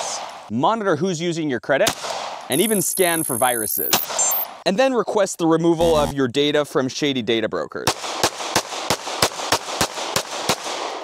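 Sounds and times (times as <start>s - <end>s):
pistol shots with echo: 7.9s - 11.0s.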